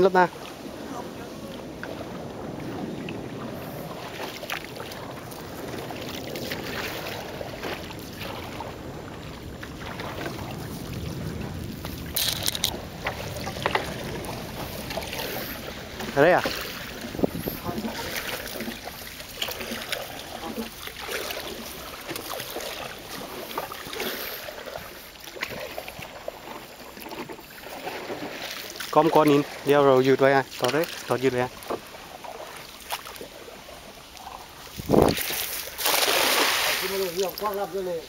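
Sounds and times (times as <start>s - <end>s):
water sloshing around boat: 0.0s - 38.0s
short splash: 34.2s - 37.4s.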